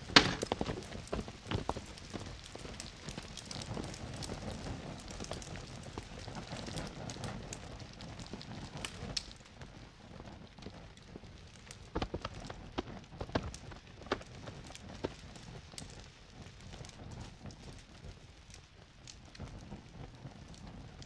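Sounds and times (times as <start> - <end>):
fire crackling and popping: 0.0 - 21.0
steady rushing of fire: 0.0 - 21.0.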